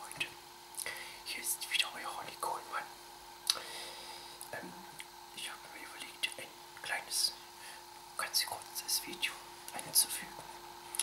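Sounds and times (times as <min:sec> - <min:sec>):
man whispering: 0:00.0 - 0:00.4, 0:01.2 - 0:02.9, 0:04.4 - 0:07.4, 0:08.2 - 0:10.5
faint hum: 0:00.0 - 0:11.0.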